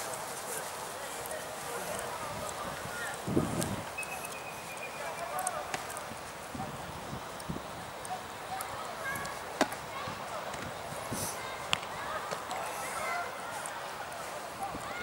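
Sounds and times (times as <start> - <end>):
faint voices: 0.0 - 15.0.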